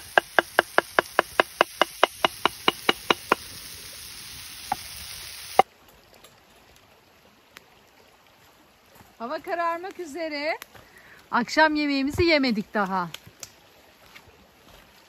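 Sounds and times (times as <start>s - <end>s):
knife chopping on wooden board: 0.0s - 3.4s
peppers sizzling in pan: 0.0s - 5.7s.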